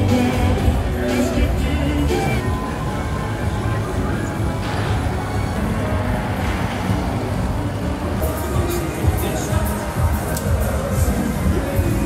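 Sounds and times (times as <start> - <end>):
funfair din: 0.0 - 12.0.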